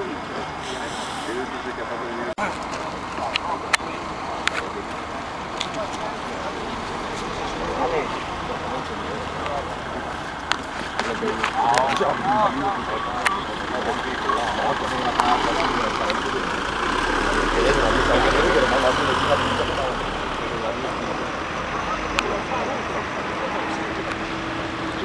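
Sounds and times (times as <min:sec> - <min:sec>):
van engine rumble: 0:00.0 - 0:25.0.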